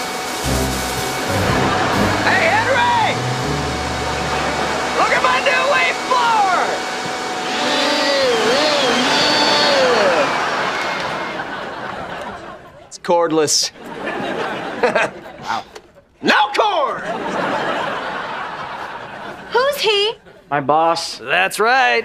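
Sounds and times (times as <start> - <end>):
leaf blower running: 0.0 - 12.0
sitcom music with deep bass: 0.4 - 5.5.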